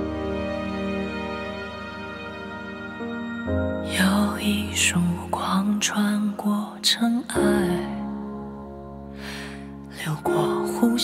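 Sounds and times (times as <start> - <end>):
gentle accompaniment with low bass: 0.0 - 11.0.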